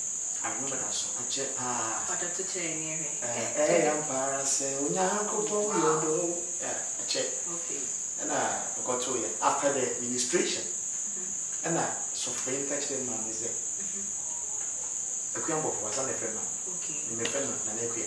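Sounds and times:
constant high-pitched whine: 0.0s - 18.0s
man talking: 3.2s - 6.9s, 15.4s - 16.5s.

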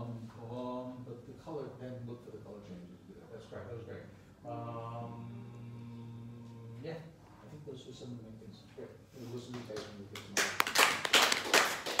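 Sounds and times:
hands clapping: 9.5s - 12.0s.

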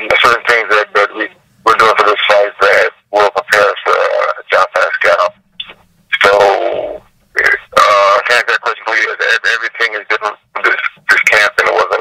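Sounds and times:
man speaking over phone line: 0.0s - 12.0s.

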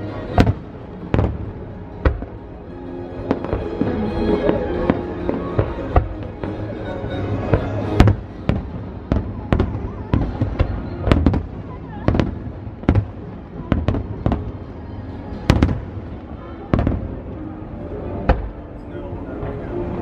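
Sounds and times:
fireworks bursting with sharp bangs: 0.2s - 2.6s, 3.2s - 17.5s, 18.2s - 18.7s.

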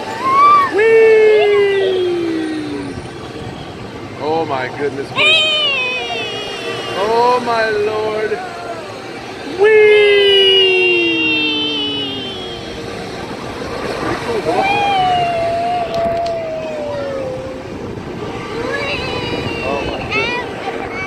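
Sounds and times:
riders yelling: 0.0s - 3.1s, 5.1s - 20.9s
steady rushing noise: 0.0s - 21.0s.

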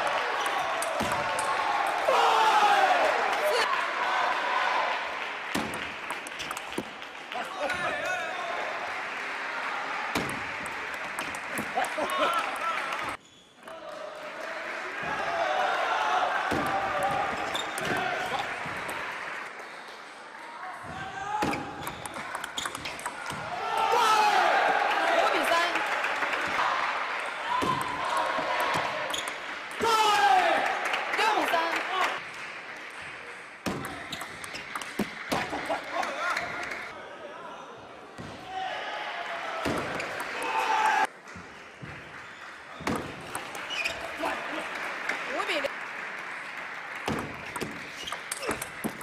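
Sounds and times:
voices in a large hall: 0.0s - 49.0s
ball bouncing on table: 5.6s - 6.9s, 10.2s - 12.2s, 21.4s - 23.5s, 27.6s - 28.0s, 33.6s - 35.5s, 47.1s - 49.0s
ping pong ball clicking off bats: 5.6s - 6.9s, 10.2s - 12.6s, 21.5s - 23.5s, 33.7s - 35.5s, 42.9s - 43.8s, 47.1s - 49.0s.

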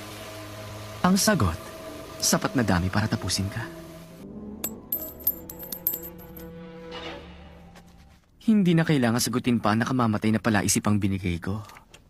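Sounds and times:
coins clinking on the ground: 4.6s - 6.4s.

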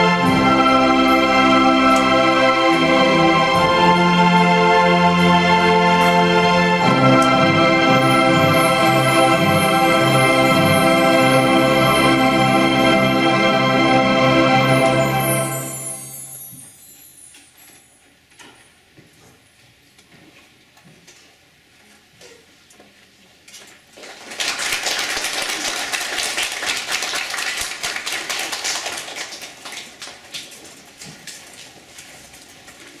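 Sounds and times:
electronic organ chord: 0.0s - 16.4s
audience applause: 24.0s - 30.8s.

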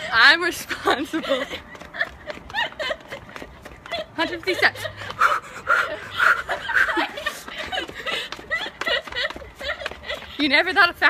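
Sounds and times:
woman panting hard: 0.8s - 10.6s.

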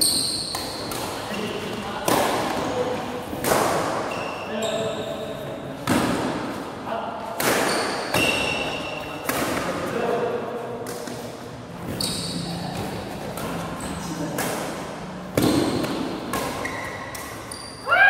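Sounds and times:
shoes squeaking on court floor: 0.0s - 2.8s, 4.0s - 5.4s, 7.6s - 9.3s, 10.9s - 14.2s, 15.4s - 17.9s
rackets hitting shuttlecock: 0.0s - 4.4s, 7.2s - 9.9s, 12.7s - 17.7s.

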